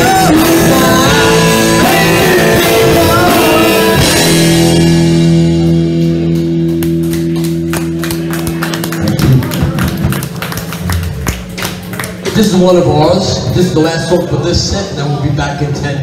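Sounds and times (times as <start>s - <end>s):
rock band final chord: 0.0s - 13.0s.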